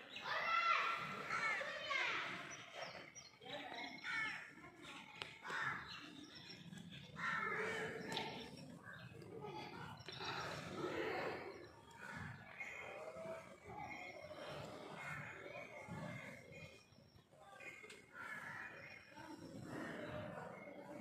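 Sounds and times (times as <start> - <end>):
people's voices: 0.0 - 21.0.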